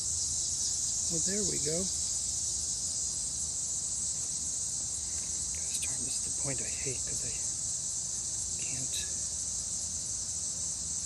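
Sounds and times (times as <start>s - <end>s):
insects shrilling: 0.0s - 11.0s.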